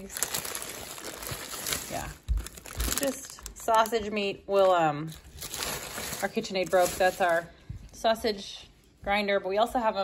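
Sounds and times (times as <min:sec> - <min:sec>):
plastic bags crinkling: 0:00.0 - 0:07.5.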